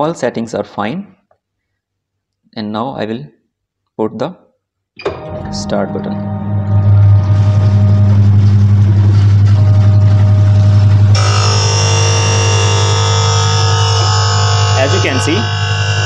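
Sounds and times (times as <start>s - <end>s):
motor low hum: 5.2s - 16.0s
high grinding whine: 5.3s - 16.0s.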